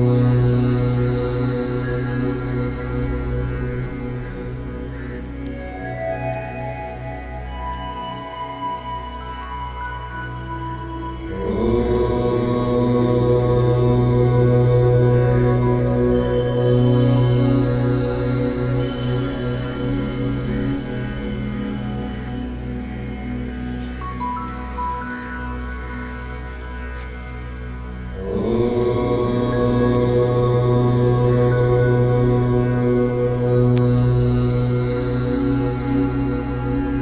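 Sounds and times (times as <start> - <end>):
person chanting: 0.0 - 4.7, 11.2 - 21.6, 28.1 - 37.0
meditative music of held tones: 0.0 - 37.0
steady drone: 0.0 - 37.0.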